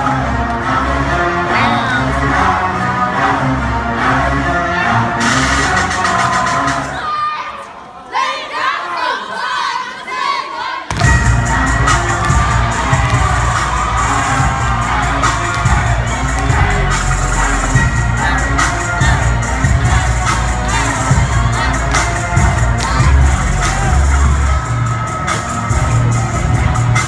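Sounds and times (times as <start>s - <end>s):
loud dance music: 0.0s - 7.1s, 10.9s - 27.0s
crowd cheering and shouting: 0.0s - 27.0s.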